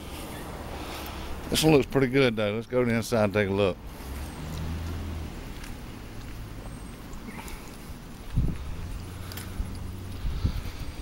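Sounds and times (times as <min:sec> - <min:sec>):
footsteps on pavement: 0:02.8 - 0:11.0.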